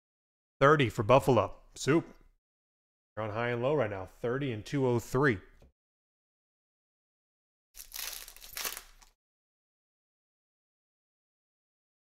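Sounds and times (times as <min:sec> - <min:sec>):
foil wrapper crinkling: 0:07.8 - 0:09.2.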